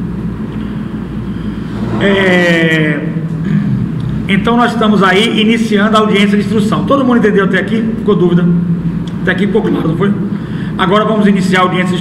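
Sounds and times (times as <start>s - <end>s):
low hum: 0.0s - 4.6s.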